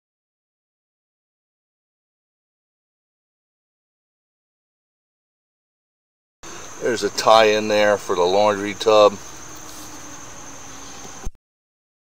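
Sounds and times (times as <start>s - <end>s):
steady background hiss: 6.4s - 11.4s.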